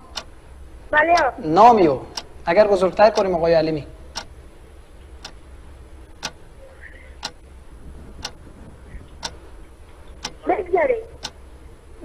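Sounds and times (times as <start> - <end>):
countdown clock ticking: 0.0 - 0.3, 1.1 - 1.4, 2.1 - 3.5, 4.1 - 4.4, 5.2 - 5.4, 6.2 - 6.4, 7.2 - 7.5, 8.2 - 8.4, 9.2 - 9.4, 10.2 - 10.5, 11.2 - 11.4.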